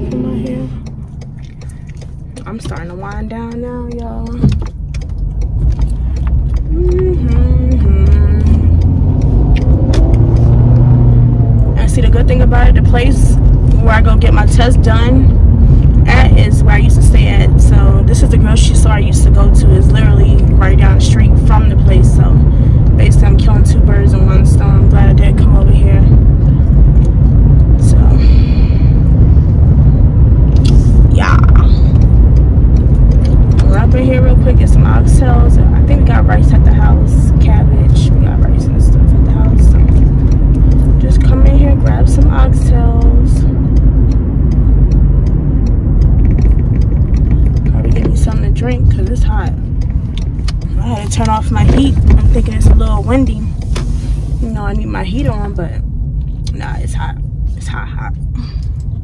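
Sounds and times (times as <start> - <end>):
car road and engine rumble: 0.0 - 59.0.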